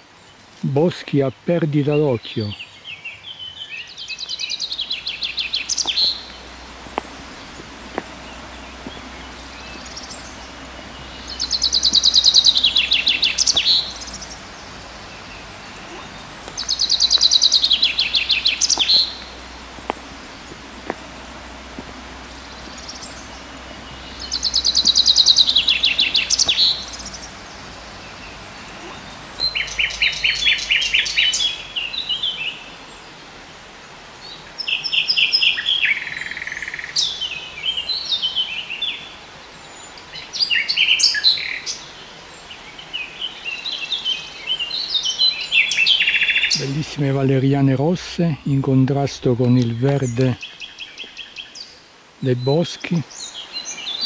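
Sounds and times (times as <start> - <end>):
songbirds singing: 0.0 - 54.0.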